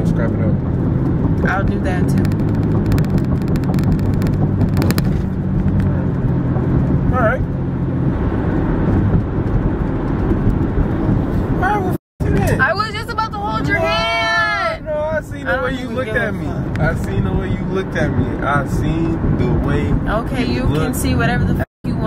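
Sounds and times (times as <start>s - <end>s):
road and engine rumble in car: 0.0s - 22.0s
voices: 11.7s - 22.0s.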